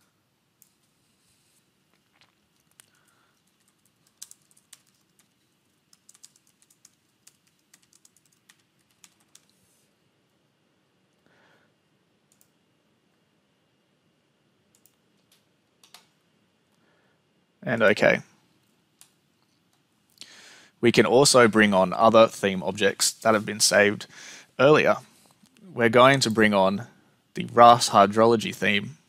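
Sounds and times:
typing on keyboard: 0:02.6 - 0:09.6.

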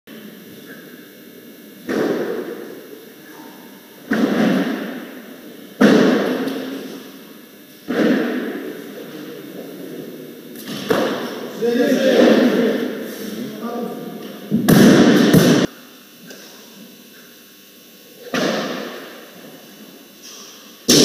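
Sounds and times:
barbells dropped echoing thuds: 0:04.1 - 0:05.1, 0:05.8 - 0:06.8, 0:07.9 - 0:08.7, 0:14.5 - 0:15.7.

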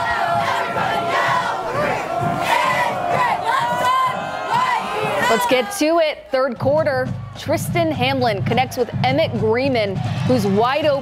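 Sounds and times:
cheerleaders shouting a cheer: 0:00.0 - 0:11.0.

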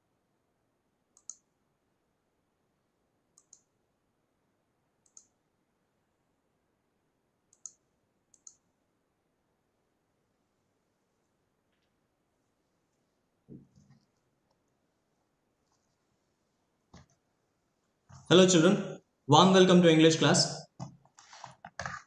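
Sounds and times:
computer mouse button clicking: 0:01.2 - 0:01.4, 0:03.4 - 0:03.7, 0:05.0 - 0:05.3, 0:07.5 - 0:08.6.

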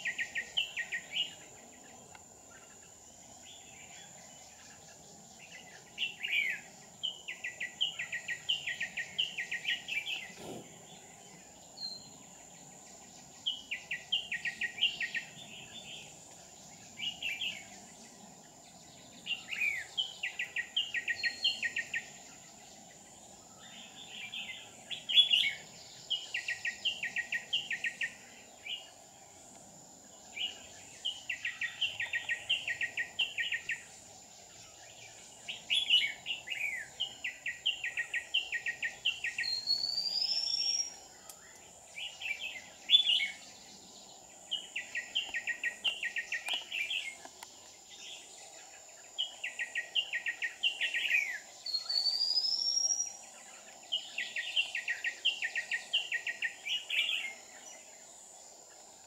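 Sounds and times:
bird chirping song: 0:00.0 - 0:59.0.

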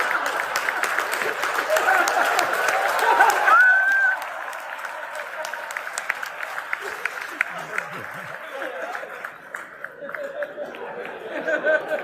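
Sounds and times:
audience applauding: 0:00.0 - 0:12.0
voices in crowd: 0:05.6 - 0:11.8.

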